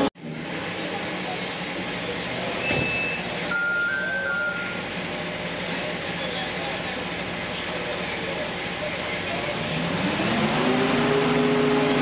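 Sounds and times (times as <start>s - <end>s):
vehicle engine idling: 0.0s - 10.7s
electronic beeping tones: 2.7s - 4.9s.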